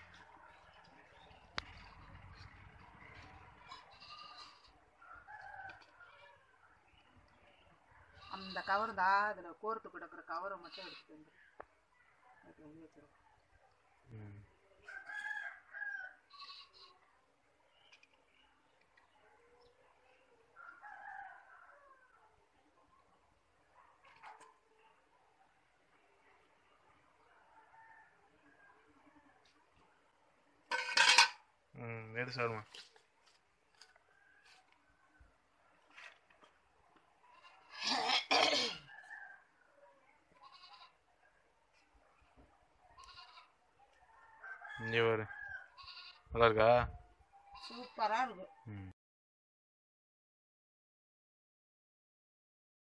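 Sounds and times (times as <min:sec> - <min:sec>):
low voice-like sound: 0:14.1 - 0:14.5, 0:48.7 - 0:49.0.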